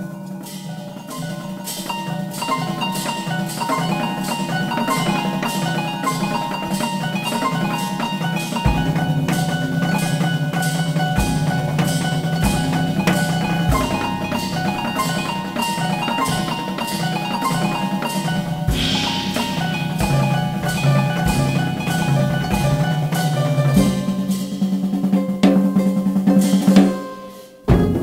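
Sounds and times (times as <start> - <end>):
bell-like drum pad notes: 0.0 - 28.0
cymbal strokes: 0.0 - 28.0
bass drum hits: 8.7 - 24.6, 27.7 - 28.0.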